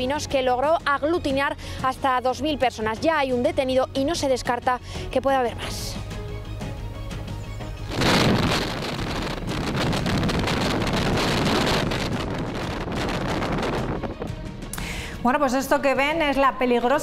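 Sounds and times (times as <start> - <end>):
background music: 0.0 - 17.0
wind rushing over microphone: 7.7 - 14.7.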